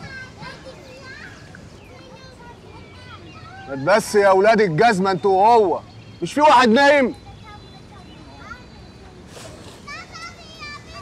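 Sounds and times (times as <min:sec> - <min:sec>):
children playing and shouting: 0:00.0 - 0:11.0.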